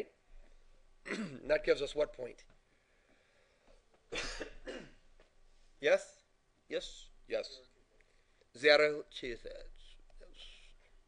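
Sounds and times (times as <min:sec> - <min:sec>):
man coughing: 0:01.1 - 0:01.5, 0:04.1 - 0:05.0.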